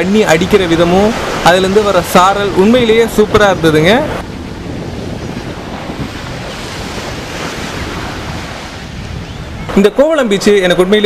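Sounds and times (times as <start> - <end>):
surf breaking on rocks: 0.0 - 9.0.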